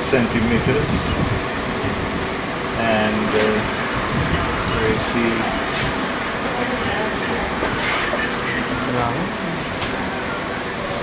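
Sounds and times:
steady hiss and rumble: 0.0 - 11.0.

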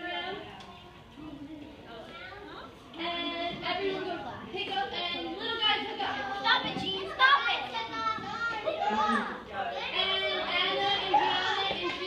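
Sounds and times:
girls chattering and calling out: 0.0 - 12.0.

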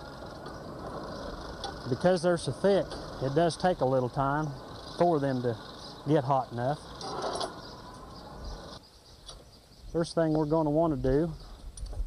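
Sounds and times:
insects chirring: 0.0 - 11.9.

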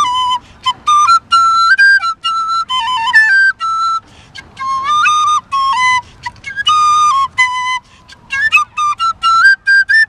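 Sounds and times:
flute playing short notes: 0.0 - 10.0.

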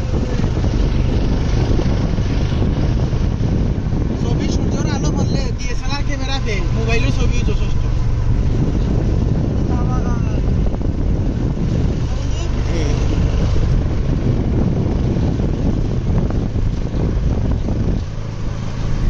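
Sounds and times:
vehicle rumble on road: 0.0 - 19.0
wind buffeting microphone: 0.0 - 19.0.

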